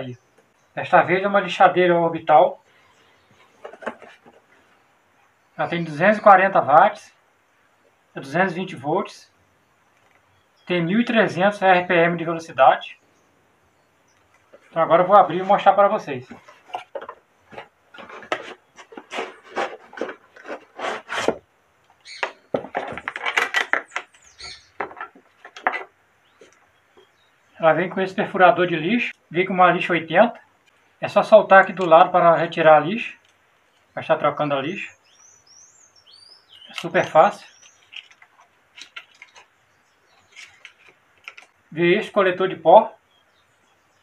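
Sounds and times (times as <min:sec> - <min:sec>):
items set on a table: 0:03.3 - 0:04.6, 0:14.2 - 0:27.1, 0:36.6 - 0:41.6
cardboard rustling and scraping: 0:03.4 - 0:04.5, 0:14.5 - 0:21.5, 0:22.4 - 0:24.2, 0:24.8 - 0:26.6, 0:40.2 - 0:41.6.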